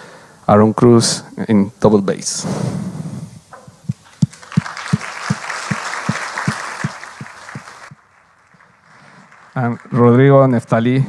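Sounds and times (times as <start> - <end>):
audience applause: 4.0 - 10.7.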